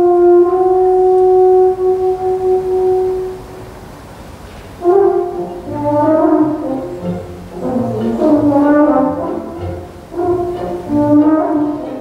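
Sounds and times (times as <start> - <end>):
euphonium sustained note: 0.0 - 3.9.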